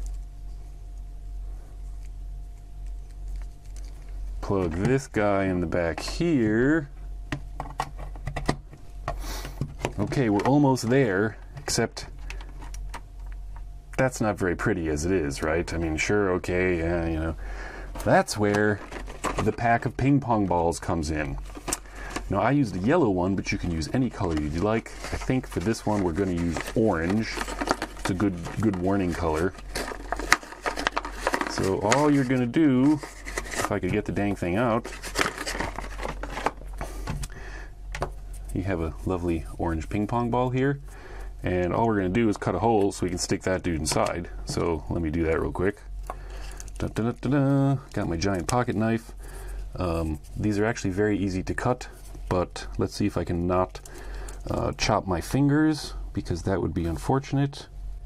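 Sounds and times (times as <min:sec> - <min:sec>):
plastic packaging crinkling: 0:17.2 - 0:20.1, 0:20.7 - 0:37.4.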